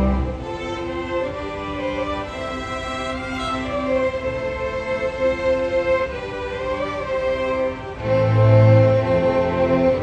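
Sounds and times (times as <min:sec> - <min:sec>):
low sustained note: 0:00.0 - 0:10.0
string orchestra playing: 0:00.0 - 0:10.0.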